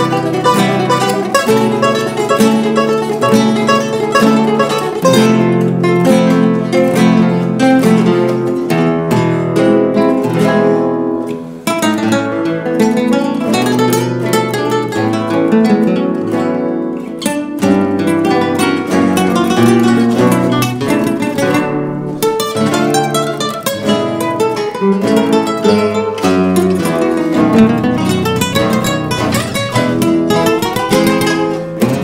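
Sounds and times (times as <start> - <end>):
acoustic guitars playing tango: 0.0 - 32.0.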